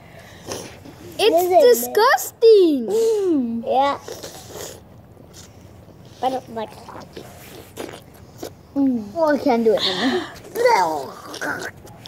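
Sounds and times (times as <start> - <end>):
children biting and sucking lemon: 0.2 - 1.2, 2.9 - 12.0.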